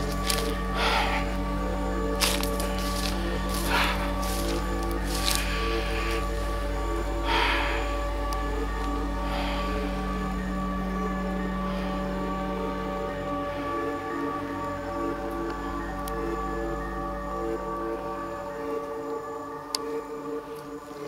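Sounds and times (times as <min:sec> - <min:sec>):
ambient drone music: 0:00.0 - 0:21.0
rustling through dry vegetation: 0:00.0 - 0:21.0.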